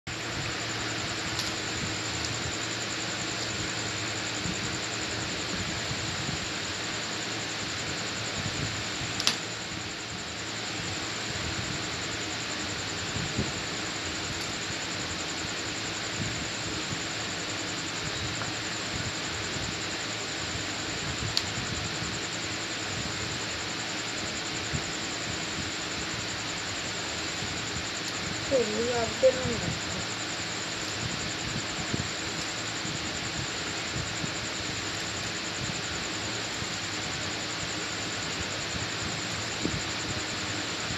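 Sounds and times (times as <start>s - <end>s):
fan-like hiss and hum: 0.1s - 40.9s
cauliflower snapping on blade: 9.2s - 9.4s.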